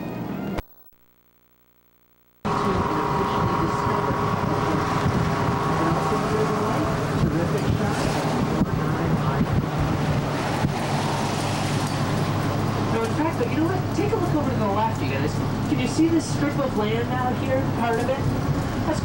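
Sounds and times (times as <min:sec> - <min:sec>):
road noise: 0:02.4 - 0:19.0
voices: 0:02.5 - 0:11.3, 0:11.9 - 0:19.0
wind noise: 0:02.5 - 0:12.9
trolley engine: 0:02.5 - 0:19.0.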